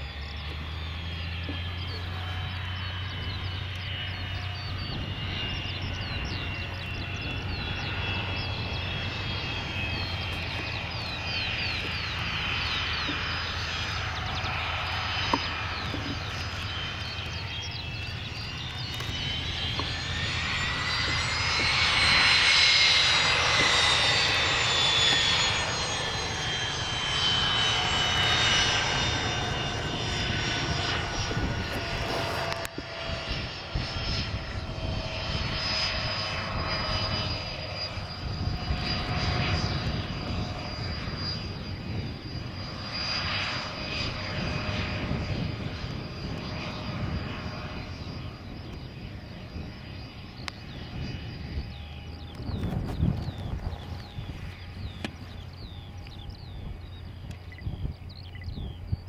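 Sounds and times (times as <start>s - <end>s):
jet engines whining: 0.0s - 59.0s.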